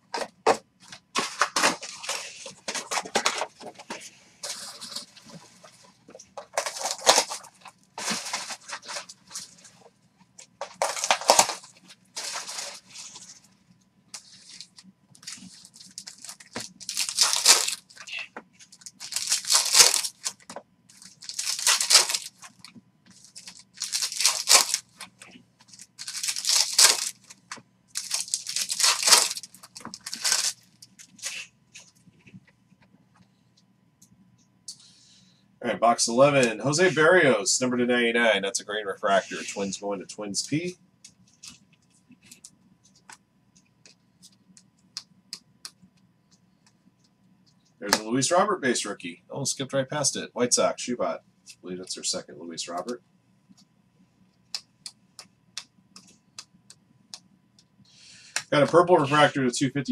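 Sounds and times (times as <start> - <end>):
foil wrapper tearing and crinkling: 6.5 - 9.1, 10.8 - 13.2, 14.3 - 18.1, 18.7 - 25.0, 25.7 - 27.4, 28.0 - 31.5.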